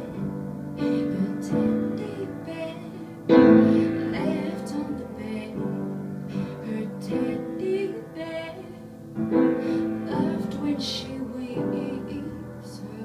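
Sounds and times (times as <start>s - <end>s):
piano chords: 0.0s - 13.0s
woman singing softly: 0.0s - 13.0s.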